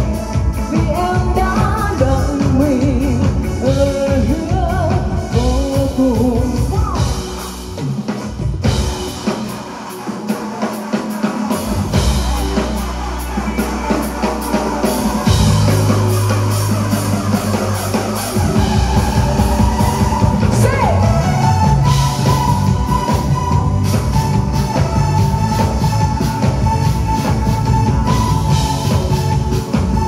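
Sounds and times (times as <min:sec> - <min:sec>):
woman singing with vibrato: 0:00.0 - 0:07.6, 0:12.0 - 0:23.6
bass guitar: 0:00.0 - 0:30.0
drum kit: 0:00.0 - 0:30.0
electric guitar: 0:00.0 - 0:30.0
keyboard: 0:00.0 - 0:30.0.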